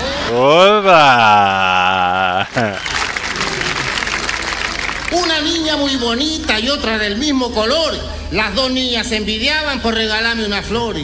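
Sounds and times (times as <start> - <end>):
audience applauding: 1.4 - 6.0.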